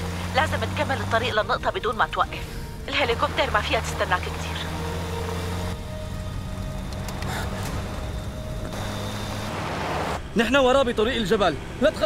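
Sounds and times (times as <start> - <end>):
background music drone: 0.0 - 12.0
truck engine rumbling: 0.0 - 12.0.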